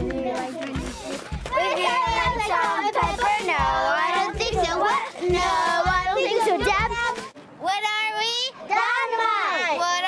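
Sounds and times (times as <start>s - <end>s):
girls chanting a cheer: 1.5s - 7.2s.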